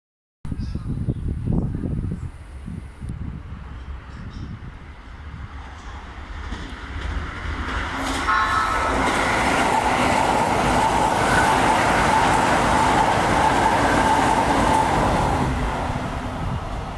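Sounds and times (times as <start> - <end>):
train passing at speed: 2.4 - 16.9
train horn blast: 8.0 - 9.1.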